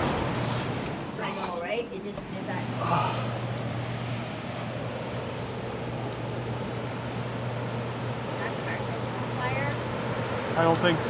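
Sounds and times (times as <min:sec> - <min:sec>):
constant low hum: 0:00.0 - 0:11.0
storm wind and rain: 0:00.0 - 0:11.0.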